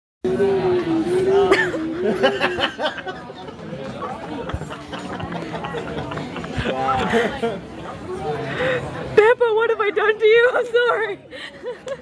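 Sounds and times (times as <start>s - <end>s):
restaurant chatter: 0.2s - 12.0s.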